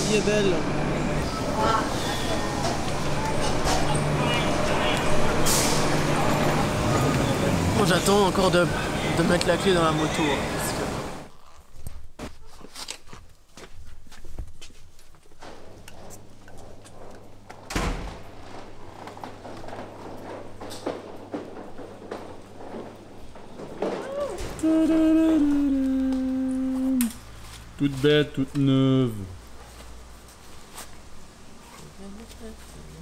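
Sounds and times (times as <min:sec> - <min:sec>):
footsteps: 0:11.4 - 0:28.0
person singing long note: 0:24.4 - 0:27.2.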